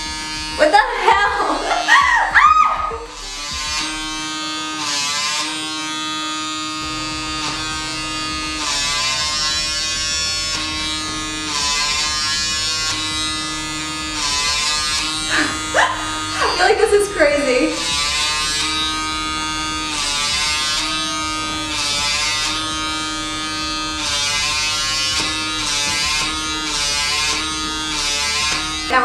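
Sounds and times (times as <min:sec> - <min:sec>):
vacuum motor buzzing: 0:00.0 - 0:29.0
person laughing: 0:01.0 - 0:03.0, 0:15.3 - 0:17.9.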